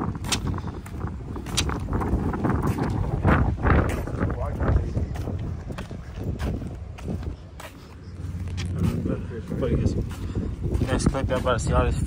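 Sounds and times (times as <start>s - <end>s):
footsteps: 0.0s - 12.0s
wind rumble on microphone: 0.0s - 12.0s
handling knocks and clicks: 1.4s - 1.9s.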